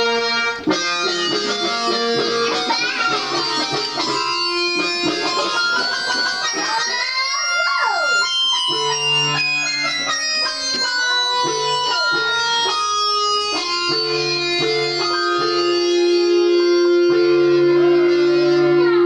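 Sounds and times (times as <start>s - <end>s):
electronic keyboard guitar-like notes: 0.0s - 19.0s.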